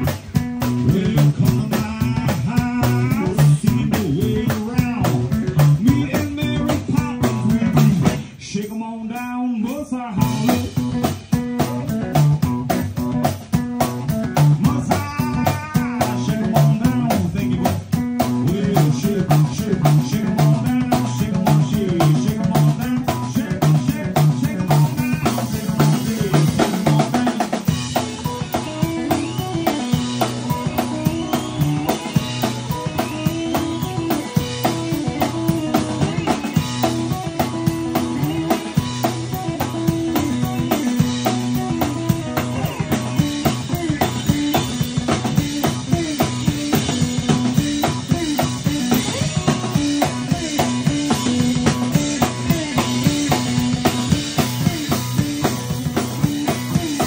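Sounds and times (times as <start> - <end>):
drum beat: 0.0 - 8.3, 10.2 - 57.0
blues guitar: 0.0 - 57.0.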